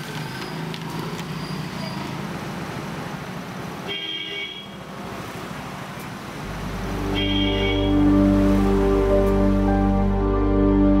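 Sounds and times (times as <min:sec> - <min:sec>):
street traffic: 0:00.0 - 0:10.7.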